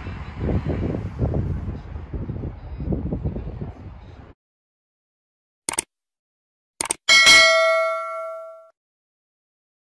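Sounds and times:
bell ding: 7.1s - 8.8s.

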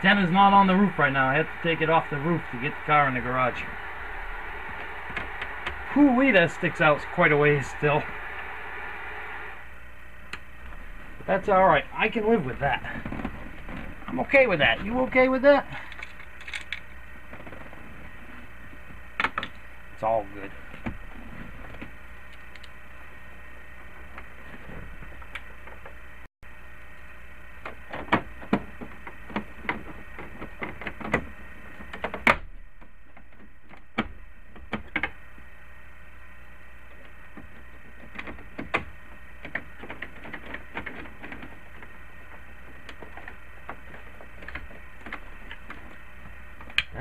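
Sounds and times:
background hiss and hum: 0.0s - 47.0s.

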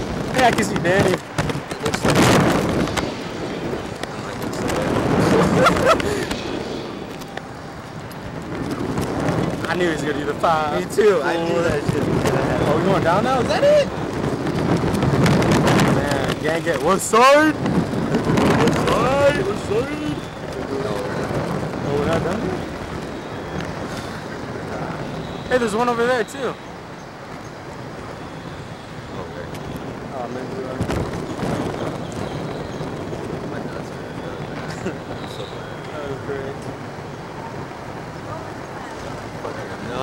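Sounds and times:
riders' voices: 0.0s - 40.0s
wind rushing over microphone: 0.0s - 40.0s.

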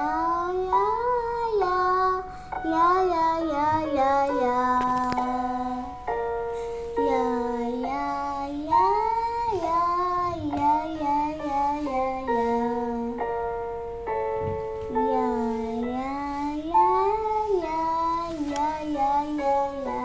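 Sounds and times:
boy singing: 0.0s - 6.0s, 7.0s - 13.5s, 14.9s - 20.0s.

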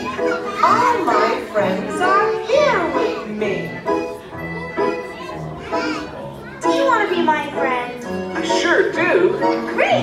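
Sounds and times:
children's song with singing: 0.0s - 10.0s
young children's voices: 0.0s - 10.0s.

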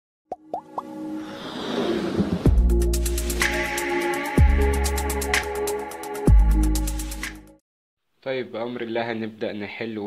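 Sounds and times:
music build: 0.4s - 7.4s.

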